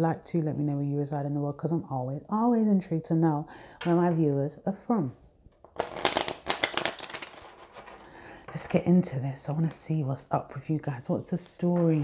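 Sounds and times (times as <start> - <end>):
cards shuffled by hand: 5.7 - 8.6.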